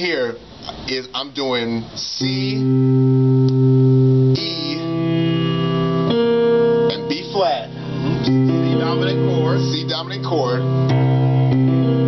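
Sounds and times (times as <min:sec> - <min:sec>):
piano notes held: 0:02.2 - 0:12.0.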